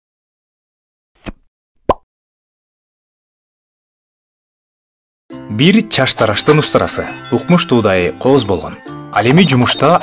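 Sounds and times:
pop sound effects: 1.2s - 2.0s.

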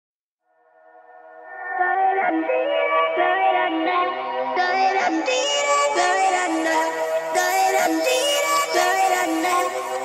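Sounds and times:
sped-up electronic dance music: 0.9s - 10.0s.

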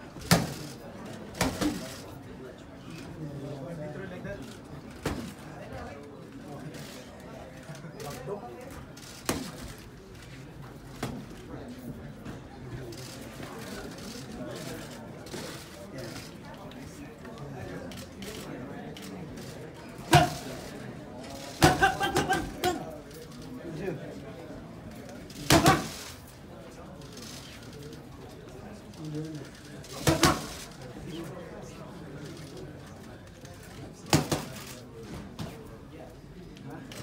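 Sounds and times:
murmur of voices: 0.0s - 37.0s
boxing gloves hitting mitts: 20.1s - 20.4s, 25.5s - 25.9s.

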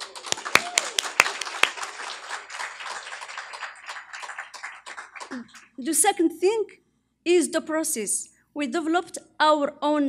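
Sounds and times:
close loud claps: 0.0s - 5.7s
audience applauding: 0.0s - 5.8s.

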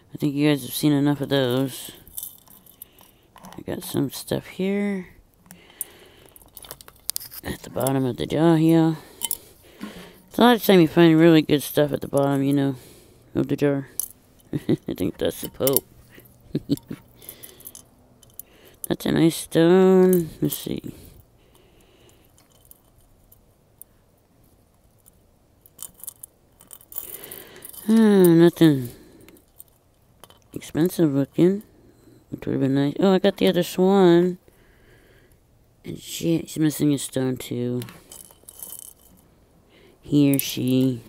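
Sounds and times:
metal jewelry clinking: 0.8s - 4.1s, 5.3s - 12.7s, 13.8s - 19.0s, 19.7s - 31.8s, 37.7s - 39.4s, 40.1s - 41.0s.

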